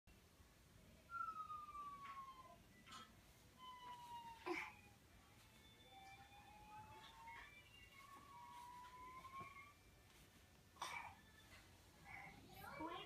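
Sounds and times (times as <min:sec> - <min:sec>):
faint siren-like wail: 0:00.8 - 0:10.2.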